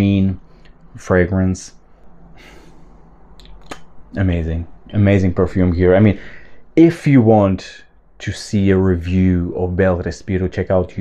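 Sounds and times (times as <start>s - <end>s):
man sniffing: 2.3s - 3.0s.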